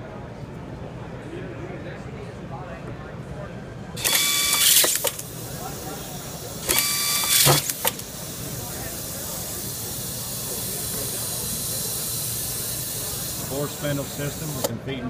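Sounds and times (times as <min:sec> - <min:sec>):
sharp screwdriver clicks: 0:04.0 - 0:05.3, 0:06.7 - 0:08.1
screwdriver motor whining: 0:04.0 - 0:05.4, 0:06.0 - 0:08.5, 0:09.4 - 0:14.7.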